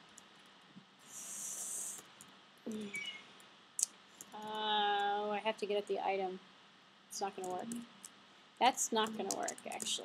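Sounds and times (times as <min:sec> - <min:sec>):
sharp high-pitched hiss: 0:01.0 - 0:02.1
person saying uh: 0:02.7 - 0:03.0, 0:07.2 - 0:07.8, 0:08.6 - 0:10.0
faint clicks: 0:09.0 - 0:10.0.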